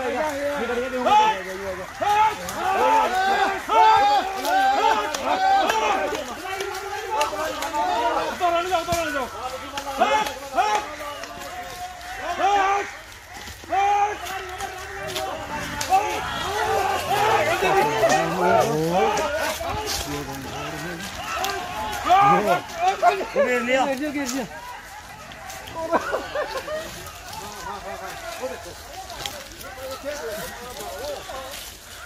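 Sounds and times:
men shouting: 0.0 - 32.0.

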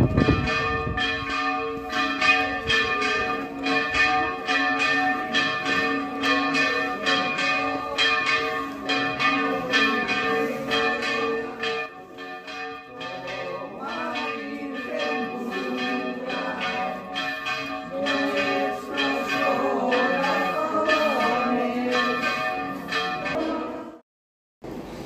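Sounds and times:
church bells ringing a peal: 0.0 - 24.0.

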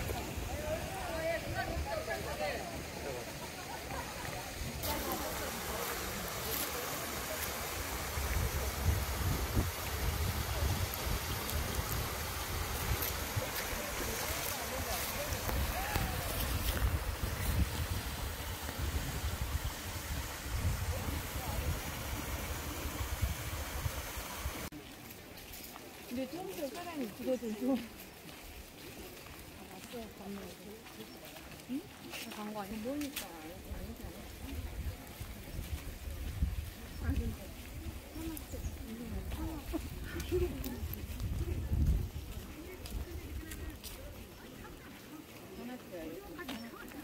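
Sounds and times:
faint voices of hikers: 0.0 - 47.0
stream over stone cascade: 0.0 - 47.0
wind rumble on microphone: 7.7 - 24.6, 33.6 - 44.0.

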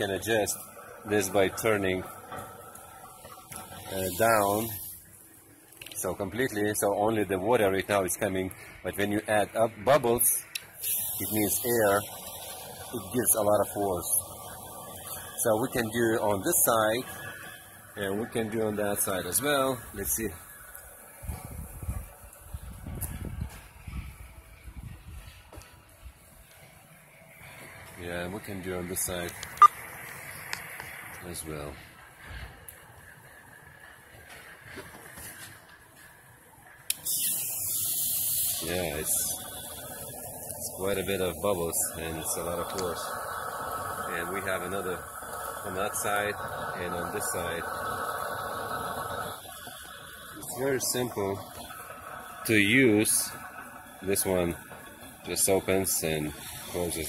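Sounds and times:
pool jet rushing water underwater: 0.0 - 22.8, 27.1 - 57.0
wind buffeting microphone: 21.2 - 25.5.

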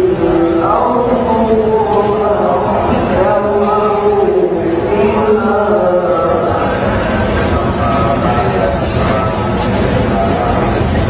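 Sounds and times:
man chanting melodic recitation: 0.0 - 11.0.

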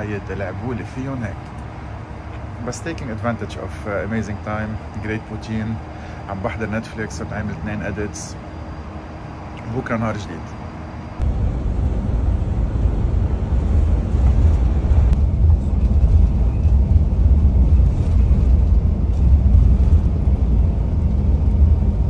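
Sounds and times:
bus engine and road noise: 0.0 - 22.0.

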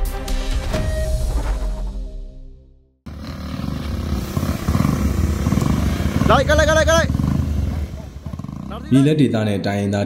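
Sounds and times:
motorcycle engines running: 3.1 - 9.2.

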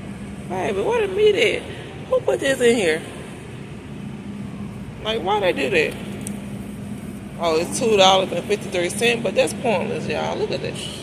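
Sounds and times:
supermarket background hum and hiss: 0.0 - 11.0.

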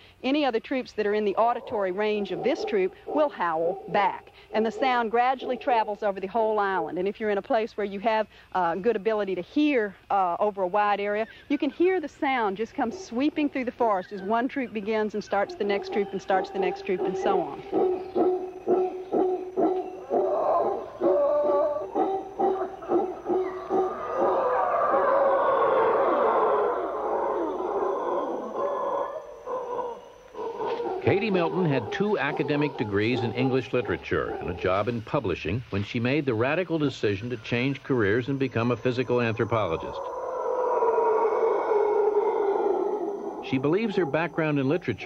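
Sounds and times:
howler monkeys howling: 1.0 - 6.7, 10.8 - 34.9, 37.6 - 45.0.

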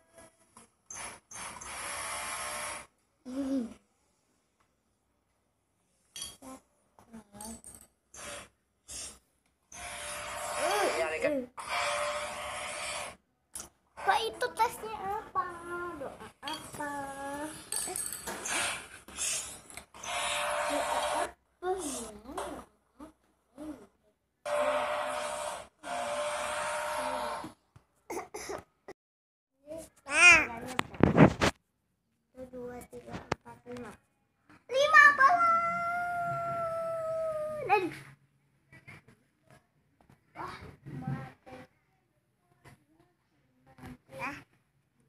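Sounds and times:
child making vocal sounds: 3.3 - 3.8, 16.8 - 17.6, 21.6 - 24.0, 34.7 - 38.0.

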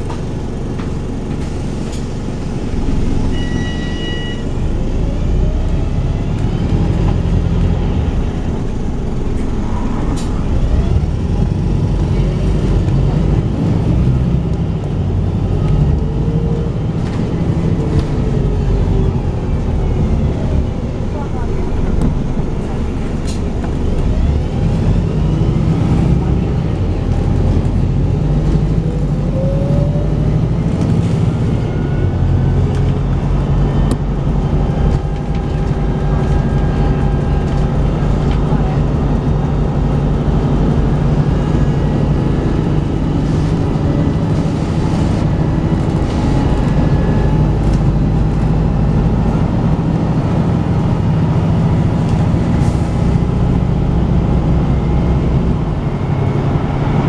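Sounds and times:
bus diesel engine revving: 4.4 - 57.0.

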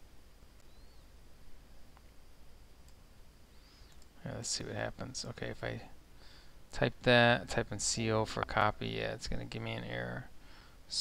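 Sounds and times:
computer mouse clicks: 3.8 - 4.1.

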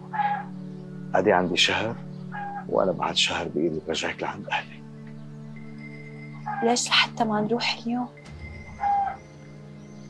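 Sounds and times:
birds calling: 0.0 - 10.0
low music drone: 0.0 - 10.0.

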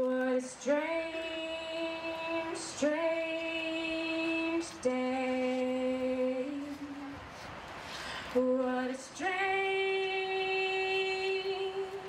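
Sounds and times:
woman singing unaccompanied: 0.0 - 7.2, 8.3 - 12.0.

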